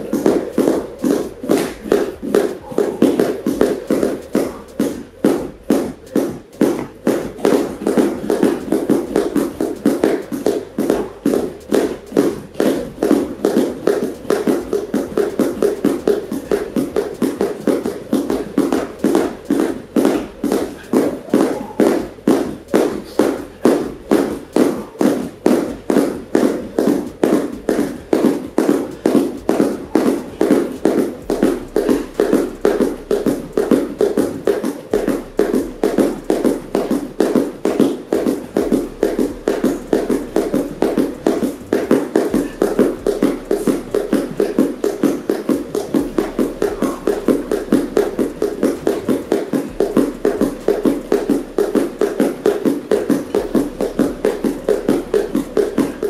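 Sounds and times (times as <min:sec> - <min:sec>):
bare feet landing on mats: 0:00.0 - 0:56.0
ropes slapping mats: 0:00.0 - 0:56.0.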